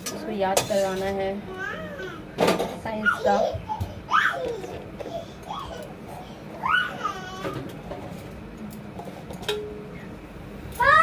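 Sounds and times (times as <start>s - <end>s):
child squealing: 3.0s - 5.8s, 6.6s - 7.6s, 10.8s - 11.0s.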